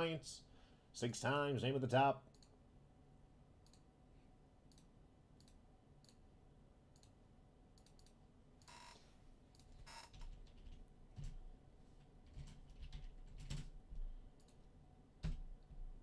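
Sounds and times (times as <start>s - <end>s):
computer mouse clicks: 2.3s - 2.6s, 3.6s - 3.9s, 4.7s - 6.2s, 6.9s - 7.2s, 7.8s - 8.8s, 14.4s - 14.6s
keyboard typing: 12.2s - 13.8s.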